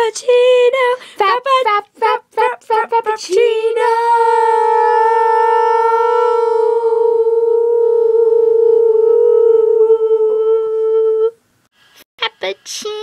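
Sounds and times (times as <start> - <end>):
girl singing a long note: 0.0 - 11.4.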